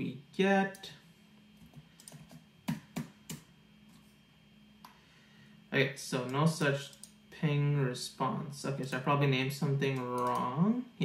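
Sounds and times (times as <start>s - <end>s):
typing on computer keyboard: 10.2s - 10.5s.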